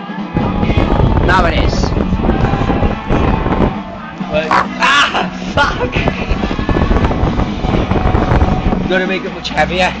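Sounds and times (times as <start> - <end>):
fan airflow buffeting microphone: 0.4 - 9.0.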